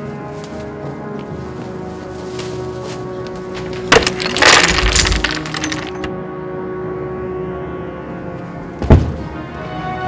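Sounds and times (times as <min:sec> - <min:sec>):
background music: 0:00.0 - 0:10.0
wooden blocks clattering down: 0:03.5 - 0:06.1.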